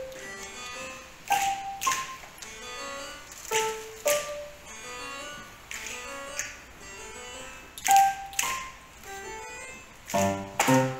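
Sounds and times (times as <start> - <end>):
digital piano melody: 0.0 - 10.9.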